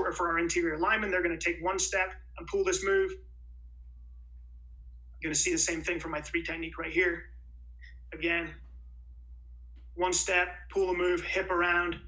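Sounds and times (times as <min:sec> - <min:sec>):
man's voice: 0:00.0 - 0:03.2, 0:05.2 - 0:07.3, 0:08.1 - 0:08.6, 0:10.0 - 0:12.0
low room hum: 0:00.0 - 0:12.0.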